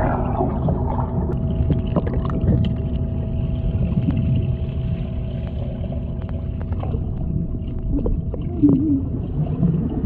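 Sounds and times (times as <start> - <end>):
muffled underwater rumble: 0.0 - 10.0
small clicks and bubbling: 0.0 - 10.0
wavering hum: 0.0 - 10.0.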